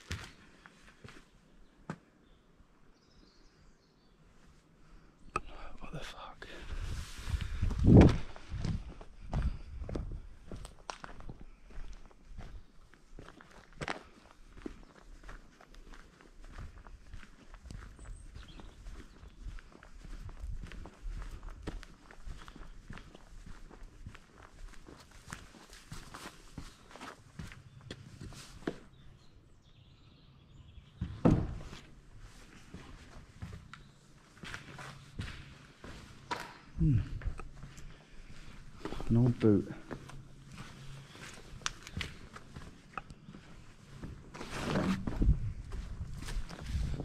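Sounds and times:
footsteps on rough ground: 0.0s - 2.0s, 6.6s - 29.0s, 31.0s - 47.0s
loud thump: 31.2s - 31.7s.

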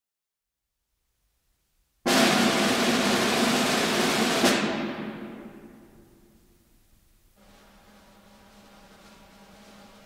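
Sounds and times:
snare drum roll: 2.1s - 6.4s, 7.3s - 10.0s.

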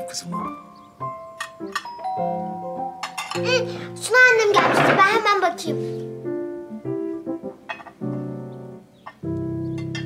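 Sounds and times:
light background music: 0.0s - 10.0s
doorbell chime: 1.8s - 3.4s.

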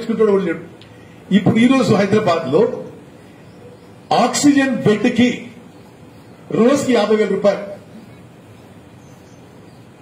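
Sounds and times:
man speaking into a microphone: 0.0s - 3.0s, 4.1s - 5.7s, 6.4s - 7.9s.

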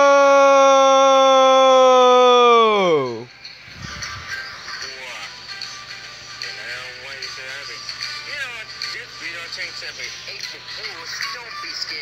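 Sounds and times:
person shouting no: 0.0s - 3.3s.

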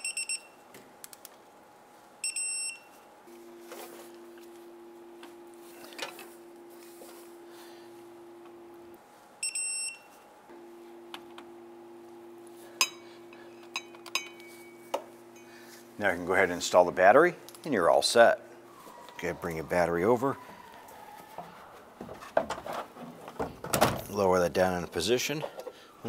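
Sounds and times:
torque wrench beeps: 0.0s - 0.6s, 2.2s - 2.9s, 9.4s - 10.1s
steady low hum: 0.0s - 26.0s.

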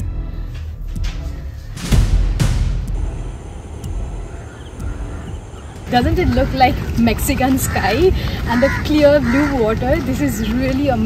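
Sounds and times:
wind rumble on microphone: 2.4s - 11.0s.

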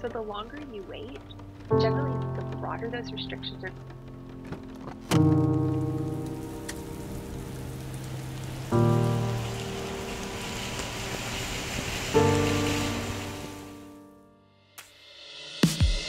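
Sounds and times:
rain falling: 0.0s - 14.0s.

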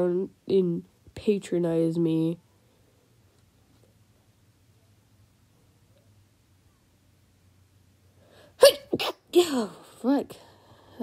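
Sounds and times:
person sneezing: 8.5s - 9.8s.

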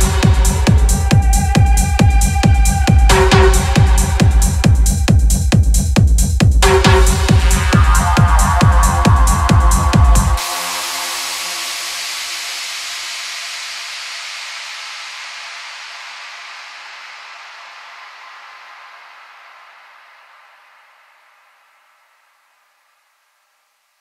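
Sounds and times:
hissing synth noise with held notes: 7.0s - 24.0s.

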